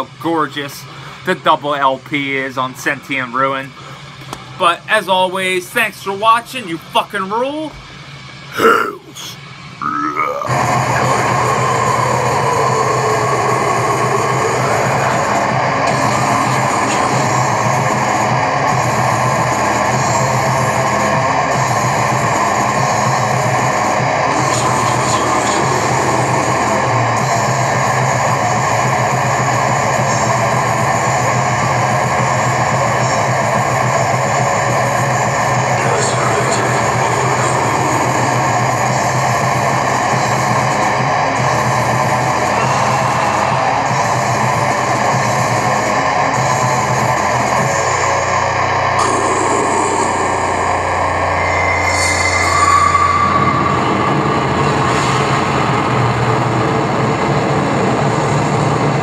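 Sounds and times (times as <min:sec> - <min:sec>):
extreme metal music: 0:00.0 - 0:59.0.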